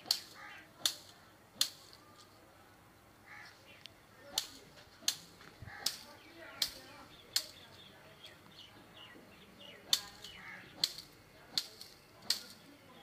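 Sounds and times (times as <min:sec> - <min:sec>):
sharp snaps: 0:00.0 - 0:02.3, 0:03.8 - 0:07.8, 0:09.8 - 0:12.7
small birds chirping: 0:00.0 - 0:13.0.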